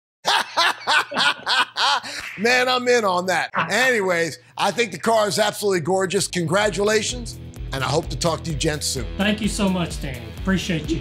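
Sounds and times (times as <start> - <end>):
man laughing heartily: 0.2 - 2.4.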